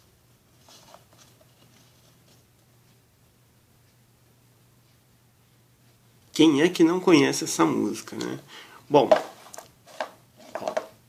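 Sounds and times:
plastic cups knocking: 9.0 - 11.0.

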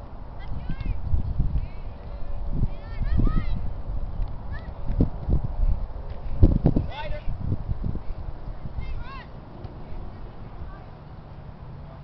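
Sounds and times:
low microphone rumble: 0.0 - 12.0.

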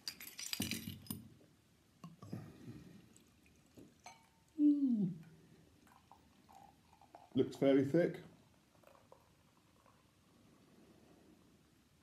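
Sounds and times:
beer pouring into a glass: 2.9 - 10.6.

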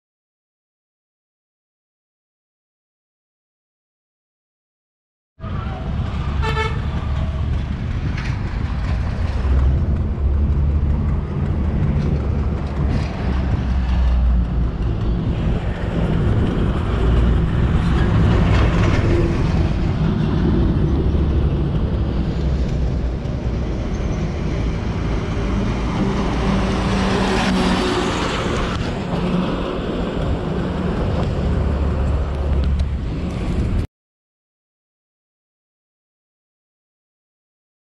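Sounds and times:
traffic rumbling past: 5.4 - 33.9
vehicle horn tooting: 6.4 - 7.0.

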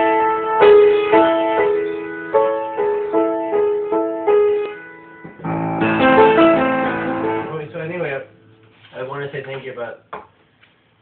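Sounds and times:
piano playing: 0.0 - 9.2.

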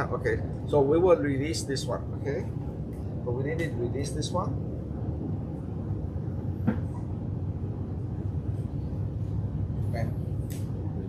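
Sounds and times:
low machinery rumble: 0.0 - 11.0.

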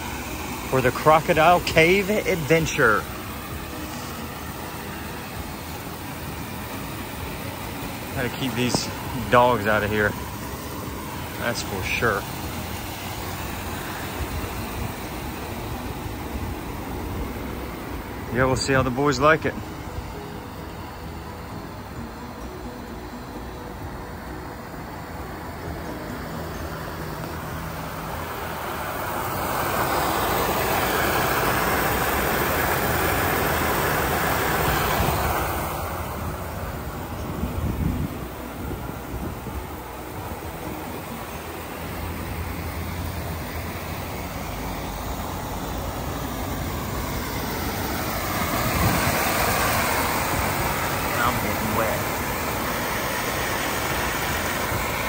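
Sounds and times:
electric blower motor running: 0.0 - 18.4, 25.1 - 55.0
water spraying from hose: 0.0 - 21.7, 26.2 - 55.0.

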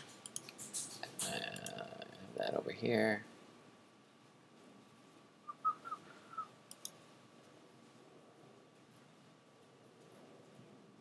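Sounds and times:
computer mouse clicks: 0.2 - 1.8, 6.7 - 7.0
person whistling: 5.5 - 6.5.

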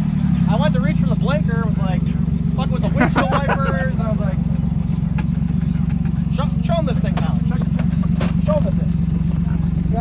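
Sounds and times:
engine idling: 0.0 - 10.0.

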